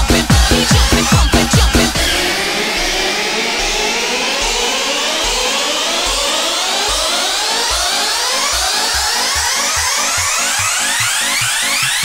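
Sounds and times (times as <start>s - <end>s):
rising synth sweeps: 0.0s - 12.0s.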